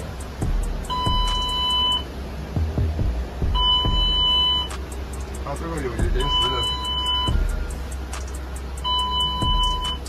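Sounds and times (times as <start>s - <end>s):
low rumble: 0.0s - 10.0s
electronic buzzer beeping: 0.9s - 2.0s, 3.6s - 4.7s, 6.1s - 7.5s, 8.8s - 10.0s.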